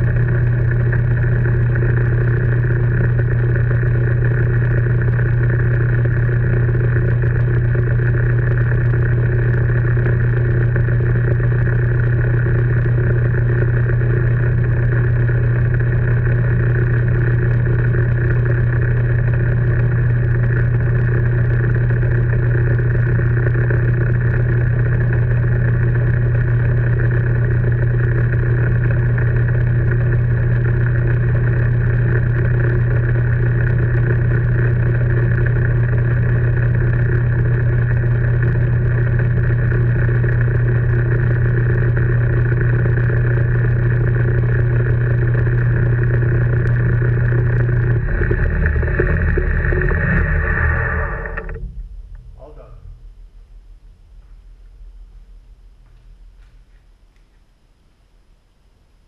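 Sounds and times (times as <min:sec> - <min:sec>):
metal lathe humming: 0:42.2 - 0:51.9.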